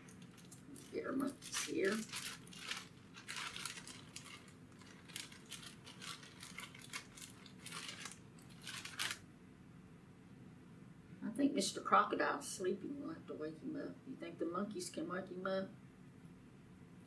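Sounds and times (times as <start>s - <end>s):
plastic bag rustling: 0.0s - 9.2s.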